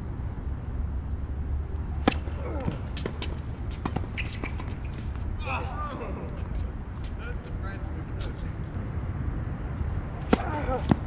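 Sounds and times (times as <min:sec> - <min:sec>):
tennis ball hit by racket: 0:01.9 - 0:05.2, 0:10.2 - 0:11.0.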